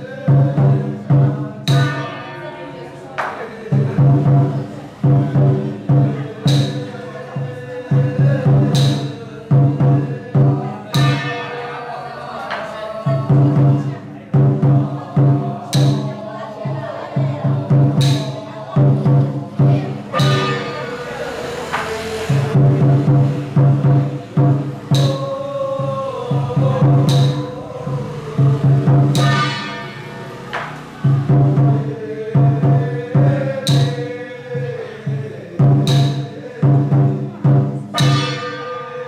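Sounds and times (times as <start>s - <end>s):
voices chanting: 0.0s - 39.0s
ringing metal crashes: 1.7s - 2.9s, 29.2s - 30.7s, 38.0s - 38.9s
drum beaten in quick runs: 12.5s - 20.8s, 21.7s - 29.8s, 30.5s - 34.2s.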